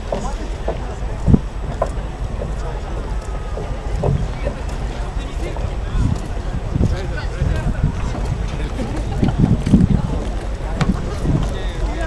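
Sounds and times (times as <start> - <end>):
indistinct voices: 0.0 - 12.0
wind buffeting microphone: 0.0 - 12.0.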